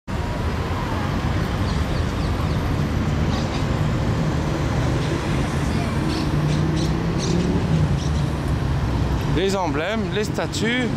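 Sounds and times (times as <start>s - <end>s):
traffic rumble: 0.1s - 10.9s.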